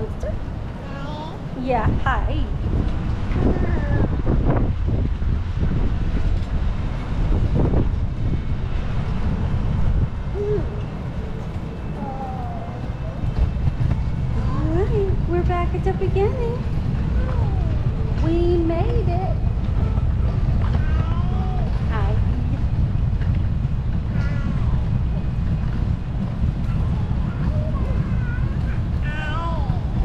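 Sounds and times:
wind buffeting microphone: 1.4 - 30.0
indistinct voices: 10.3 - 13.6.

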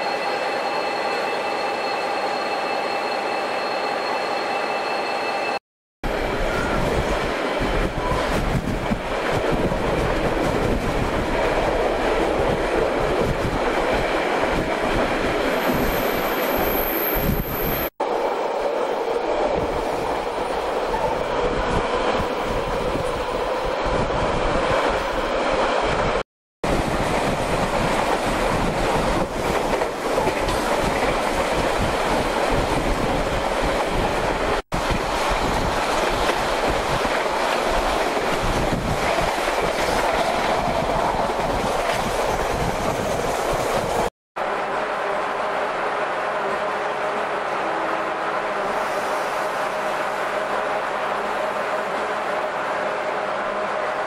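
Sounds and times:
train wheels rumbling on rails: 6.1 - 44.1.

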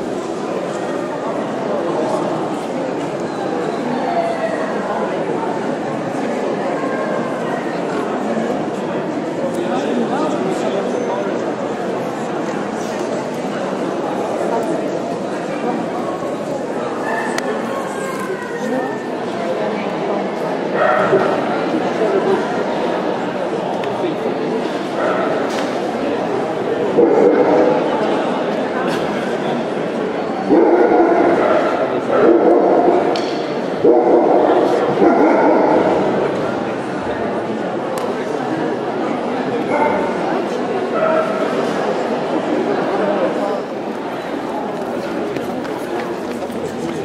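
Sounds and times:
crowd talking in large hall: 0.0 - 47.0.

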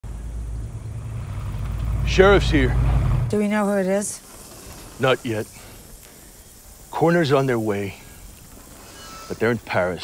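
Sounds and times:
car engine and tyres rumbling: 0.0 - 8.9.

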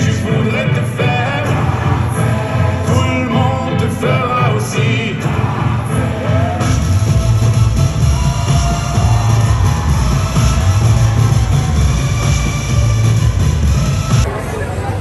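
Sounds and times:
heavy pulsing bass line: 0.0 - 14.3
electronic pop music: 0.0 - 14.4.

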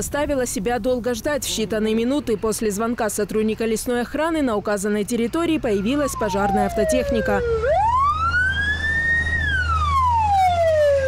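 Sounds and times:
fire engine siren wailing: 5.7 - 11.0.

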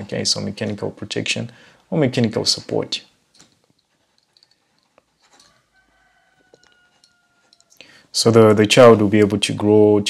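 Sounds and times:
distant rooster crowing: 5.4 - 8.1.

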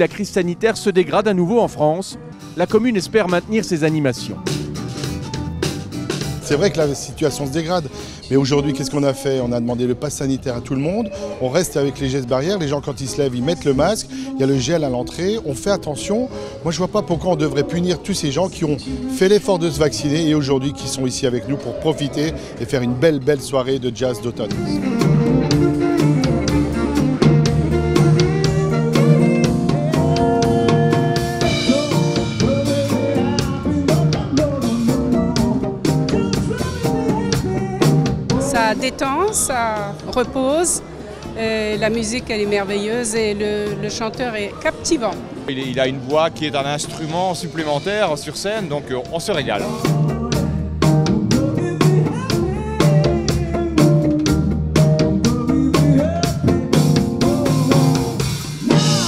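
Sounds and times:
live jazz band playing: 2.2 - 8.8, 21.2 - 59.0
drums steady beat: 2.4 - 6.9, 24.4 - 59.0.

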